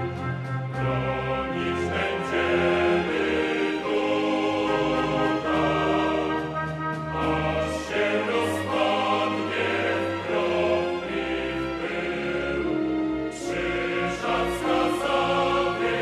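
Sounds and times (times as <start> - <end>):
choir singing chords: 0.0 - 16.0.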